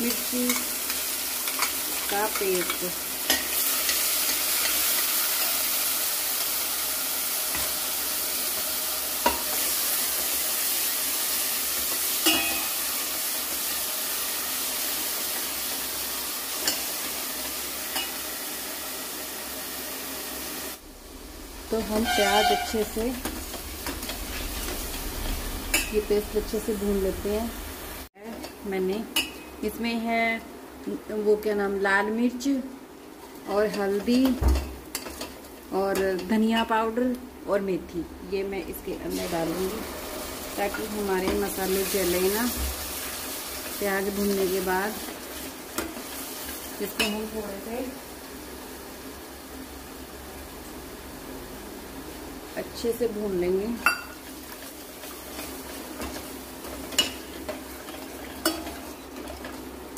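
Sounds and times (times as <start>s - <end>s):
paste sizzling in hot oil: 0.0s - 28.1s, 39.1s - 50.1s, 53.5s - 59.9s
ladle scraping metal pot: 21.7s - 26.0s.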